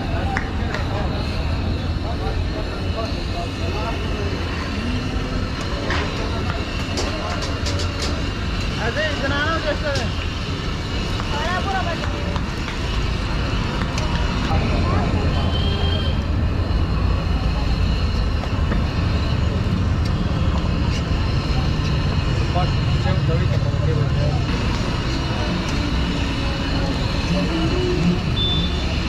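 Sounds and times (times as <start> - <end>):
people talking: 0.0 - 29.0
traffic rumble: 0.0 - 29.0.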